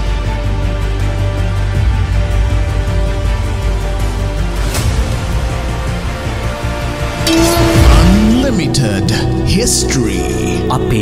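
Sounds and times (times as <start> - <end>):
intro music: 7.1 - 11.0
tones sliding up and down: 7.3 - 8.8.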